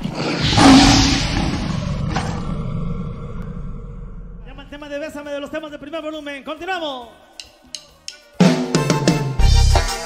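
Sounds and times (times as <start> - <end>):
tiger roar: 0.0 - 4.5
low rumble: 0.4 - 5.1.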